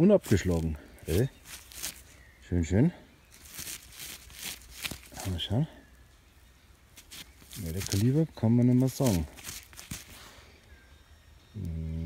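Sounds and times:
man humming: 11.6 - 12.0.

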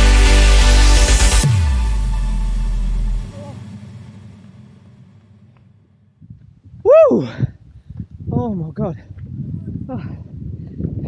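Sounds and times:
electronic music: 0.0 - 5.0.

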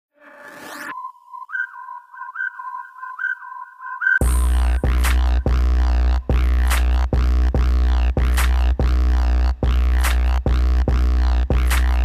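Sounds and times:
warbling electronic whistle tone: 0.2 - 4.7.

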